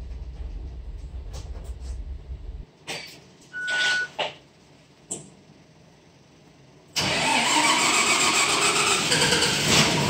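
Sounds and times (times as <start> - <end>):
bus engine cranking and running: 6.9 - 10.0.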